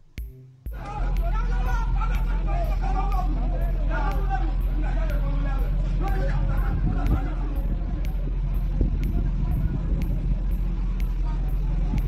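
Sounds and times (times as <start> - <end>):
vehicle engine running: 0.1 - 12.0
faint voices: 0.7 - 12.0.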